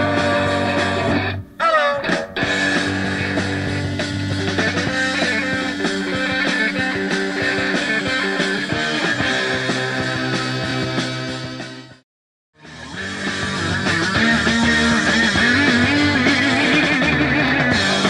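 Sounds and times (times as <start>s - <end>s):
rock band playing loudly: 0.0s - 12.0s, 12.6s - 18.0s.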